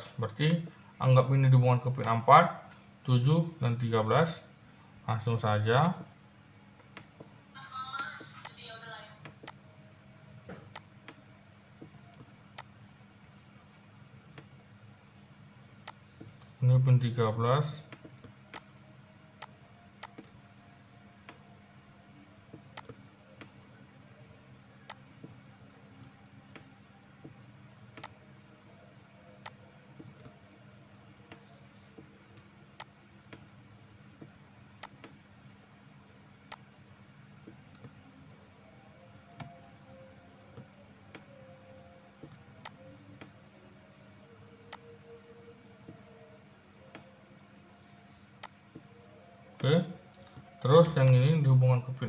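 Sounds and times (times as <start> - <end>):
low electrical hum: 0.0 - 52.0
faint mouse clicks: 19.4 - 20.4.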